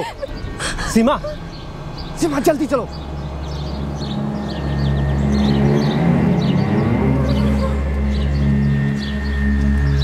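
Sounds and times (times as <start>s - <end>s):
low bass drone music: 0.0s - 10.0s.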